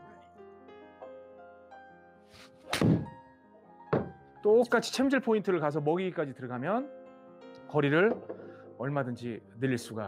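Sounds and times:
golf club swish: 0:02.3 - 0:03.2
club striking golf ball: 0:02.4 - 0:03.2
thud: 0:02.7 - 0:03.2, 0:03.9 - 0:04.2.

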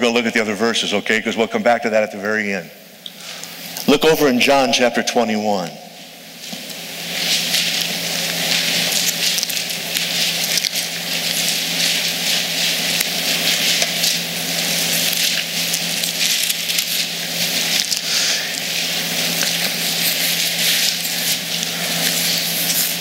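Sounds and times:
thin pages rustling: 0:06.4 - 0:23.0.

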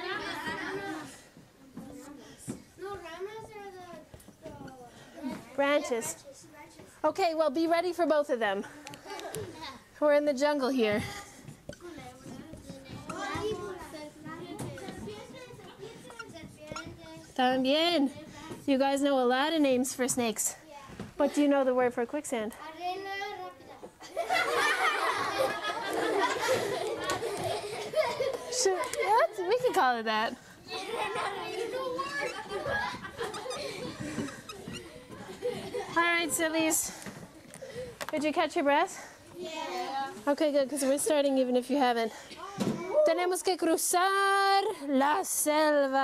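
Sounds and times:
children laughing: 0:00.0 - 0:01.3, 0:08.7 - 0:09.9, 0:24.0 - 0:38.1
children talking and calling out: 0:00.0 - 0:07.0, 0:07.9 - 0:19.8, 0:22.5 - 0:46.0.

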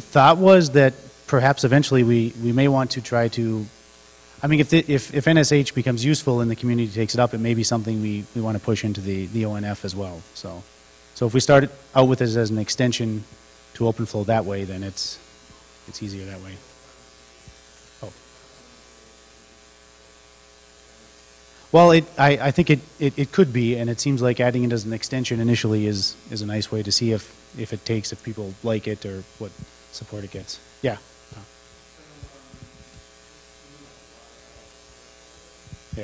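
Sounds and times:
electrical mains hum: 0:00.0 - 0:36.0
faint distant speech: 0:32.0 - 0:35.6.

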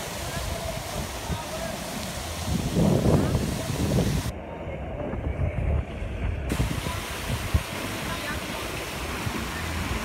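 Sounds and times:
fountains and water jets splashing: 0:00.0 - 0:04.9, 0:05.6 - 0:10.0
wind buffeting microphone: 0:00.0 - 0:10.0.

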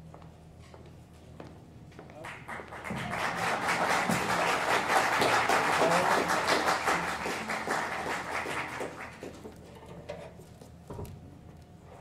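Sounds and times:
audience applauding: 0:02.2 - 0:09.5.

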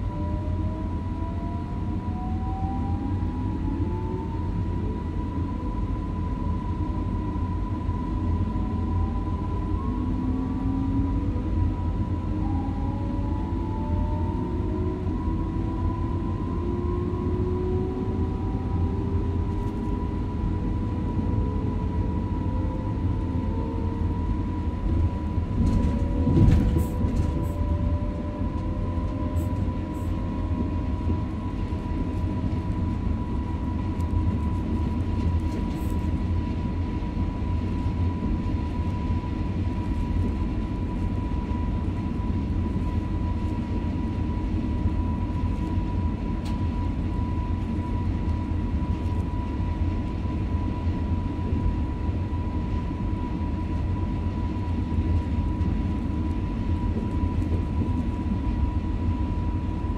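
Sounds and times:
train wheels rumbling on rail: 0:02.8 - 0:59.9.

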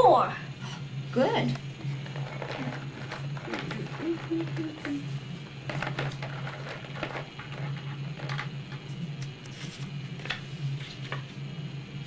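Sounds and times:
plastic toys clicking and rattling: 0:02.0 - 0:05.0, 0:05.6 - 0:08.9.

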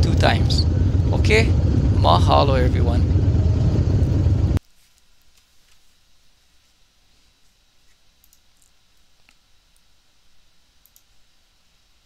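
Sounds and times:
motorcycle engines idling: 0:00.0 - 0:04.6.

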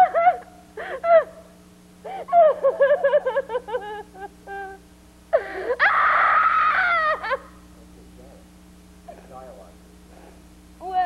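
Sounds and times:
woman's breathy squeal: 0:05.3 - 0:07.4.

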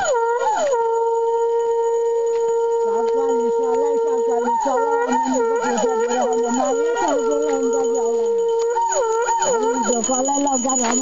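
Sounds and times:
wind instrument melody: 0:00.0 - 0:11.0.

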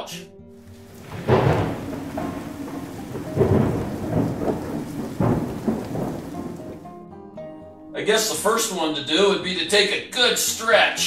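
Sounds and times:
steady rain: 0:00.6 - 0:06.9
rolling thunder: 0:00.6 - 0:07.0.

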